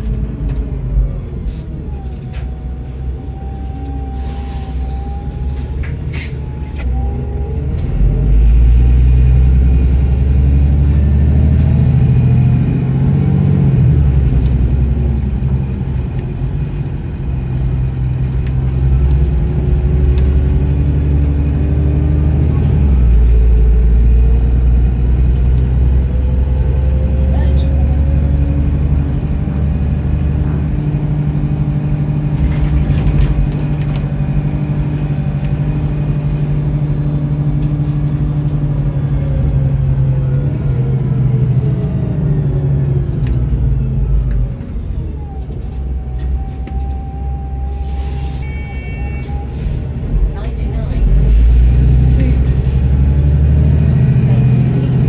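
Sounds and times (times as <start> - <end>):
bus engine under load: 0.0 - 55.0.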